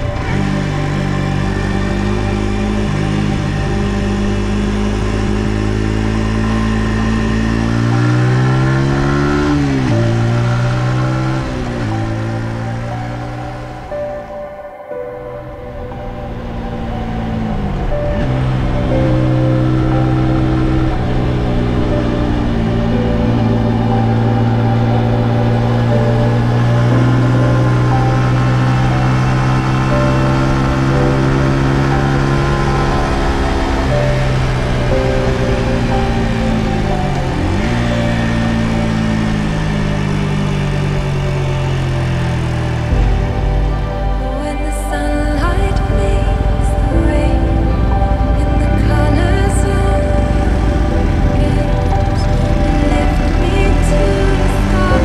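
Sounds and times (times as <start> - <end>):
motorcycle engine running: 0.0 - 14.4, 15.5 - 55.0
background music: 0.0 - 55.0.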